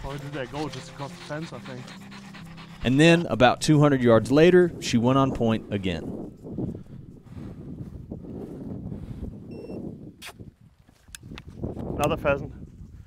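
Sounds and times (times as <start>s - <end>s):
short faint beep: 9.5s - 9.8s.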